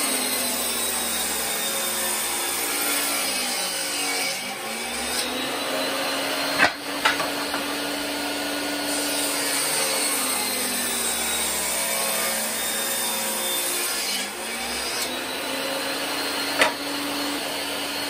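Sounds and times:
table saw cutting wood: 0:00.0 - 0:18.0.

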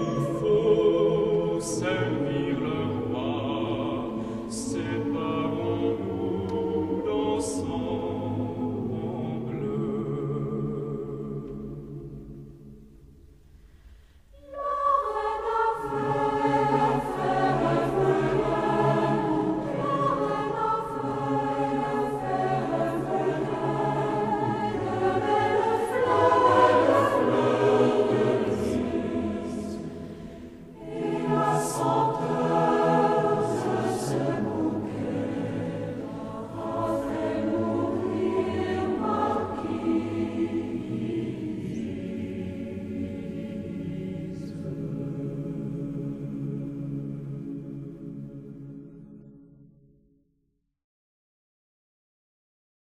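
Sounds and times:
choir singing: 0:00.0 - 0:13.0, 0:14.3 - 0:49.5.

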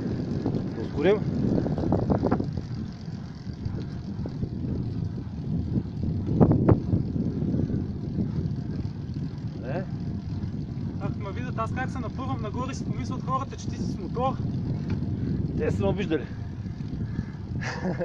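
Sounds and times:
moving vehicle rumble: 0:00.0 - 0:18.0.

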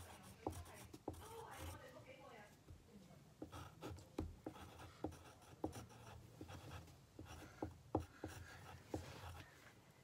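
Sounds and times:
pen scratching on paper: 0:00.0 - 0:01.9, 0:03.4 - 0:09.5.

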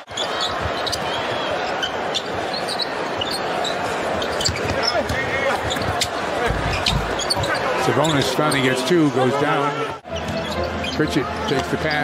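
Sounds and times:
sneaker squeaks: 0:00.0 - 0:08.7, 0:10.0 - 0:12.0
arena crowd noise: 0:00.0 - 0:12.0
basketball bouncing on court: 0:04.2 - 0:07.6.

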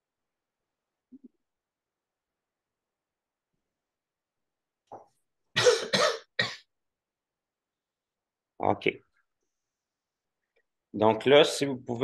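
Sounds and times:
person coughing: 0:05.6 - 0:06.7.

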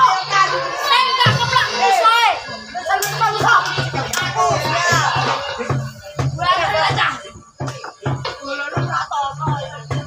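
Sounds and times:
background music with bass: 0:00.0 - 0:10.0
children shouting and squealing: 0:00.0 - 0:10.0.

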